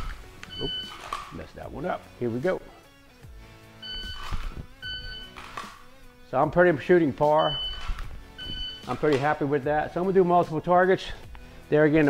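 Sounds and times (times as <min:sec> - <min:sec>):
shot timer beeps: 0:00.5 - 0:01.0, 0:03.8 - 0:05.4, 0:07.4 - 0:09.1.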